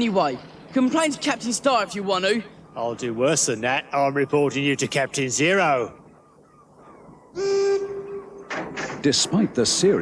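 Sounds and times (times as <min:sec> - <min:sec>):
boat horn blast: 0:07.4 - 0:08.2.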